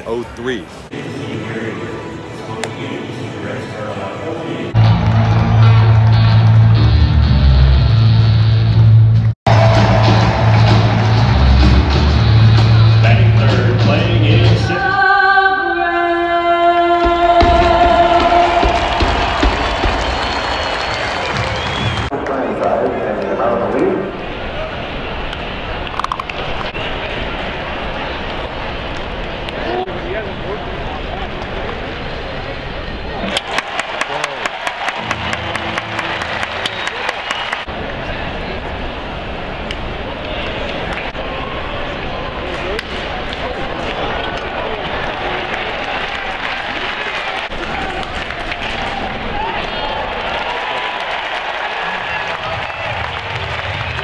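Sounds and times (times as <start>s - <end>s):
crowd murmur: 21.9s - 50.6s.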